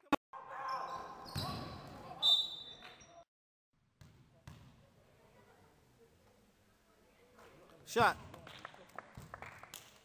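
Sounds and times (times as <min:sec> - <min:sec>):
shoe squeaking on floor: 0:00.7 - 0:03.2
basketball bouncing: 0:04.0 - 0:04.8.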